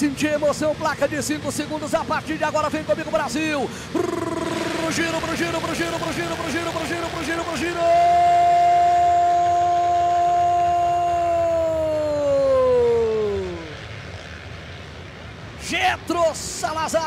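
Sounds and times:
dirt bike engines: 0.0s - 17.0s
announcer's long held shout: 3.9s - 13.8s.

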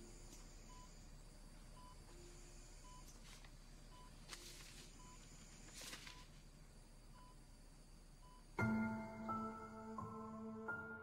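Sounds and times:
patient monitor beeps: 0.0s - 1.0s, 1.7s - 6.4s, 7.1s - 7.5s, 8.2s - 8.6s.

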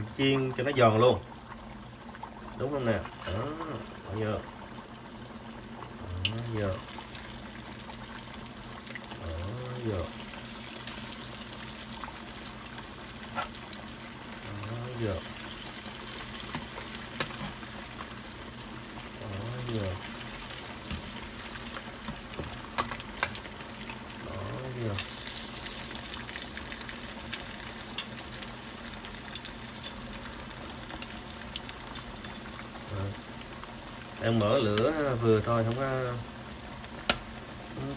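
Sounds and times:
oil bubbling and sizzling: 0.0s - 37.9s
oil pops and crackles: 20.5s - 23.9s, 36.7s - 37.4s.

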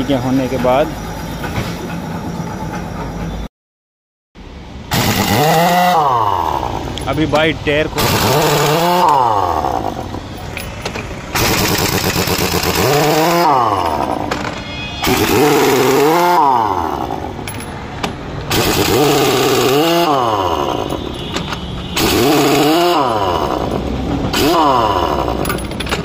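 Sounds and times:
pneumatic impact wrench whine: 4.9s - 6.8s, 8.0s - 17.4s, 18.5s - 25.8s.

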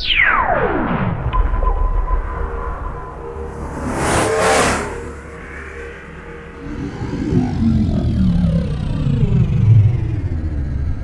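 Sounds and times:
low music drone: 1.3s - 11.0s
whoosh: 2.9s - 7.0s.

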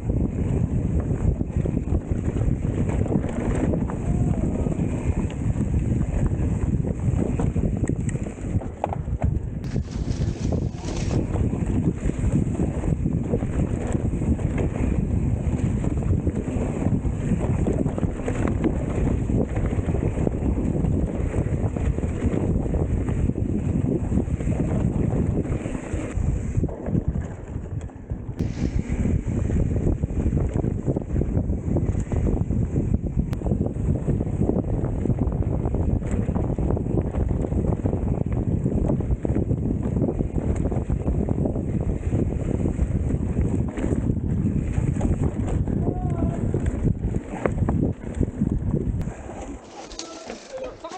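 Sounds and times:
bike rattling over bumps: 0.0s - 50.9s
wind on camera microphone: 0.0s - 50.9s
tyres on dirt and leaves: 9.7s - 11.4s, 49.0s - 50.9s.

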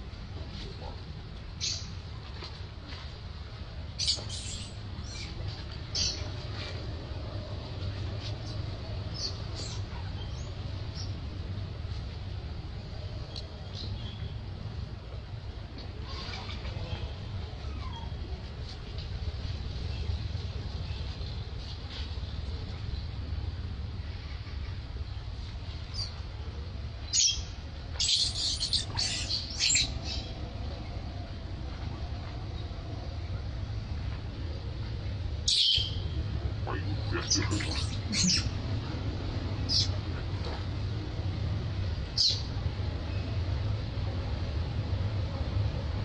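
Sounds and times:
steady low rumble: 0.0s - 46.0s
baby monkey squeaking: 28.0s - 29.9s.

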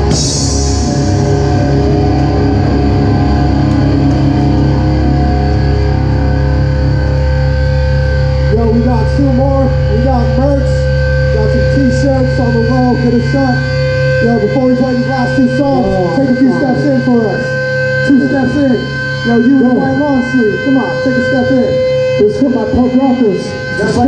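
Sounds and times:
amplifier hum: 0.0s - 24.0s
held feedback-like guitar tones: 0.0s - 24.0s
people's voices: 8.5s - 24.0s.

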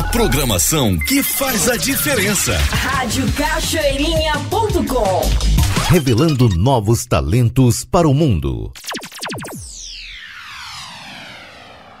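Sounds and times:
descending sweep sound effect: 8.8s - 12.0s.

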